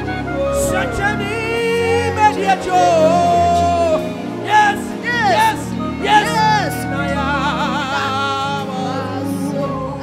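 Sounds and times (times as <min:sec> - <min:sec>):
sustained backing chords: 0:00.0 - 0:10.0
man singing into microphone: 0:00.4 - 0:10.0.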